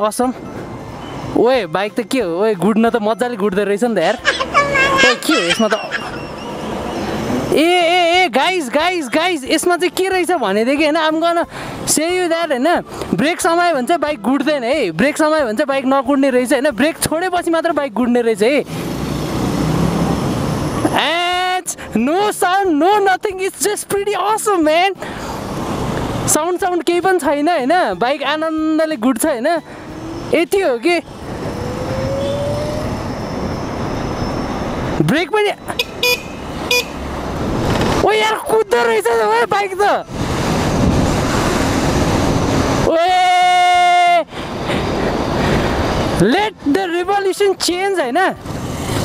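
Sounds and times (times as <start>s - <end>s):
road and traffic noise: 0.0s - 49.0s
loud steady tone: 35.7s - 37.1s
wind noise on microphone: 40.0s - 42.9s.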